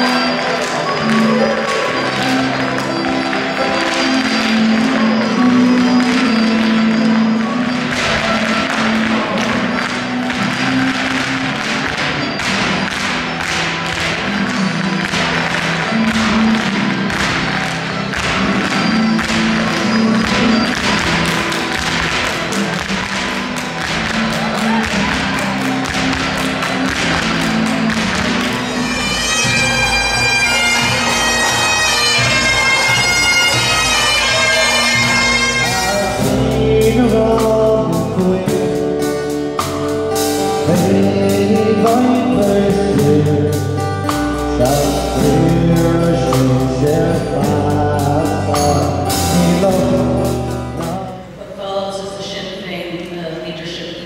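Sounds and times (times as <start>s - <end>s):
hard shoes tapping and stamping: 2.6s - 33.9s.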